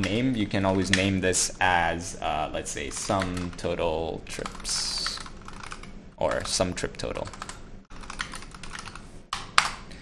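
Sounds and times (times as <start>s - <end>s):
rapid typing on keyboard: 2.9s - 3.8s, 4.4s - 9.0s.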